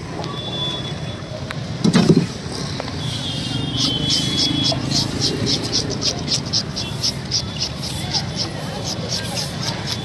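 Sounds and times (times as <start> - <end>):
market background rumble: 0.0 - 10.0.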